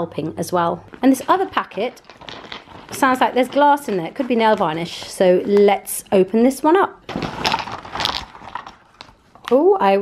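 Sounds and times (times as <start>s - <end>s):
glass bottles rattling: 1.1s - 4.8s
plastic mailer tearing: 1.2s - 5.6s, 7.1s - 9.2s.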